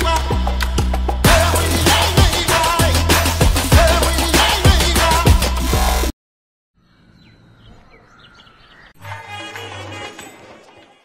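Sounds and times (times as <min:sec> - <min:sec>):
background music with low bass: 0:00.0 - 0:06.1
loud intro music: 0:00.0 - 0:06.1
birds chirping: 0:06.8 - 0:09.6.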